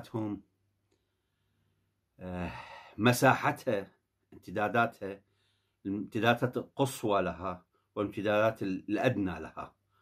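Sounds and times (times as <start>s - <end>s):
man speaking: 0.0s - 0.5s, 2.2s - 5.2s, 5.8s - 9.8s.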